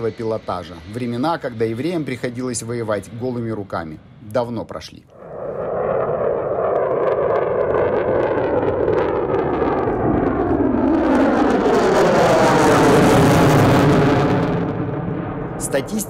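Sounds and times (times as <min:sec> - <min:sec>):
jet engine flying past: 0:00.0 - 0:16.0.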